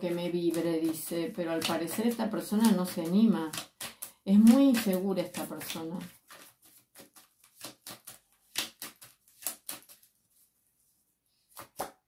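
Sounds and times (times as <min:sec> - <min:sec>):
cards clicking and snapping: 0:01.6 - 0:10.1, 0:11.5 - 0:12.0.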